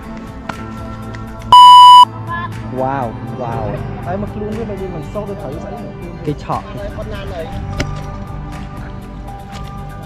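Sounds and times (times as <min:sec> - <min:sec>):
loud electronic beep: 0:01.5 - 0:02.1.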